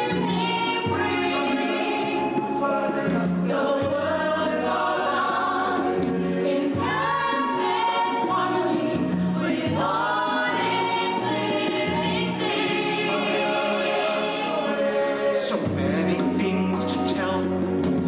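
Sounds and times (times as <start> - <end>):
choir singing: 0.0 - 17.7
orchestra playing: 0.0 - 18.0.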